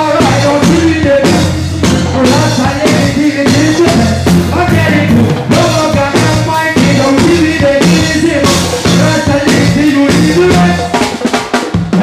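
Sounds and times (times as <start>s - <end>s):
drum fill: 0.0s - 12.0s
live reggae band playing: 0.0s - 12.0s.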